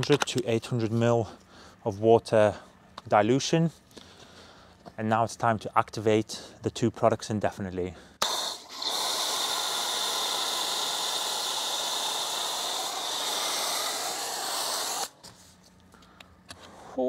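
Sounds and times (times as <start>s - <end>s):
foam sprayer hissing: 8.2s - 15.2s.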